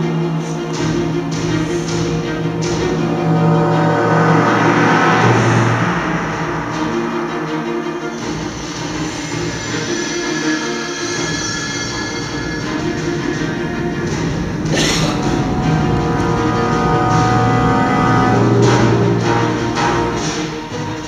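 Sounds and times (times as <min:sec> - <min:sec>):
orchestral music over loudspeakers: 0:00.0 - 0:21.0
rushing swell: 0:00.0 - 0:21.0
low rumble: 0:00.9 - 0:10.3, 0:11.3 - 0:20.8.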